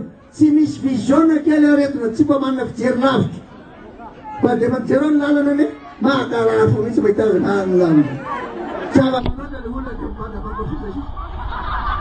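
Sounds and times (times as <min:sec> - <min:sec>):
people talking: 0:04.3 - 0:11.1
steady low hum: 0:09.2 - 0:12.0.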